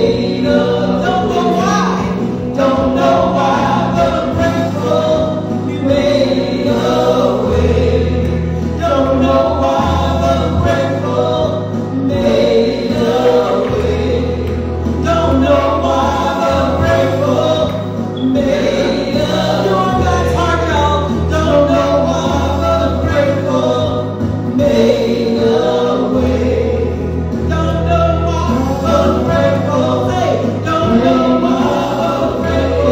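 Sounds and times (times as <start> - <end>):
band with held bass notes: 0.0 - 32.9
choir singing gospel: 0.0 - 32.9.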